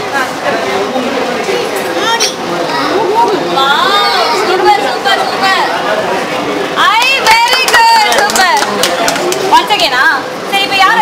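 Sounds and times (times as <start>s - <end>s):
voices chattering: 0.0s - 11.0s
children's voices: 1.4s - 5.8s.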